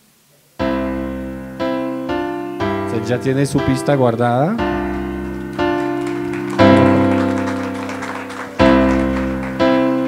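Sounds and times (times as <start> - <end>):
electronic piano chords: 0.6 - 10.0.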